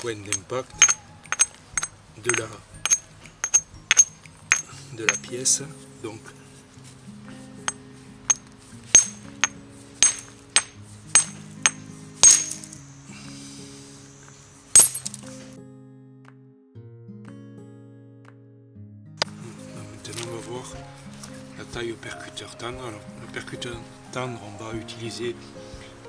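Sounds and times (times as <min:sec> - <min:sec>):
stone clinking on stone: 0:00.0 - 0:05.4, 0:07.6 - 0:12.9, 0:14.2 - 0:15.3
background music with held notes: 0:00.0 - 0:26.0.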